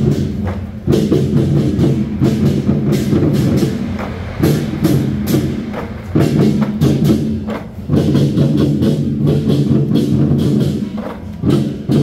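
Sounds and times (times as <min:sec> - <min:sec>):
drums struck: 0:00.0 - 0:12.0.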